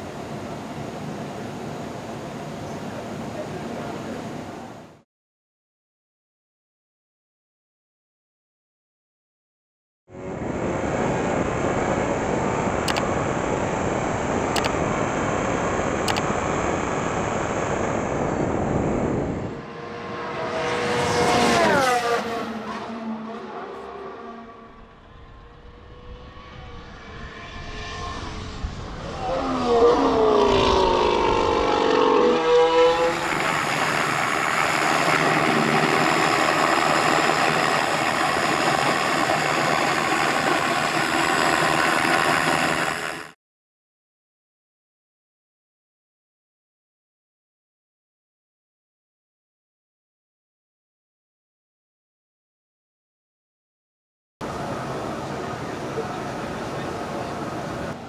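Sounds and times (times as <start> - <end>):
racing car engine at high revs: 10.2 - 43.4
racing car engine passing by: 19.4 - 39.4.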